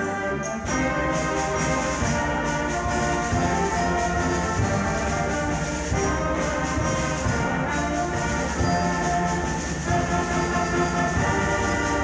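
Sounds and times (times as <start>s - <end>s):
concert band playing held chords: 0.0s - 12.0s.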